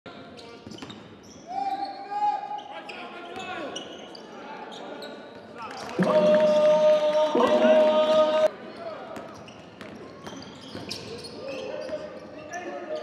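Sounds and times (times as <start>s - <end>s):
sneakers squeaking: 0.2s - 6.1s, 9.2s - 13.0s
players calling out: 5.7s - 8.5s.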